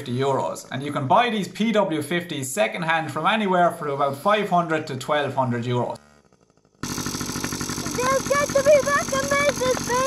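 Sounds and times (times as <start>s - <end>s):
two-stroke engine idling: 5.7s - 10.0s.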